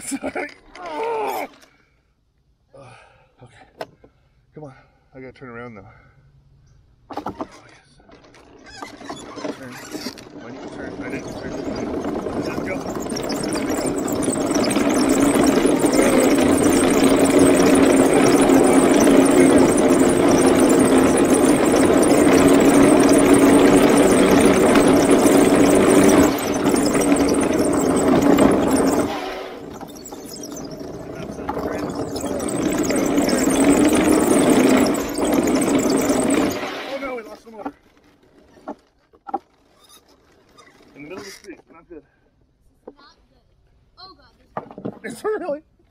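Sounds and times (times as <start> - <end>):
wooden tracks rolling on road: 8.0 - 41.9
electric motors droning: 10.7 - 37.3.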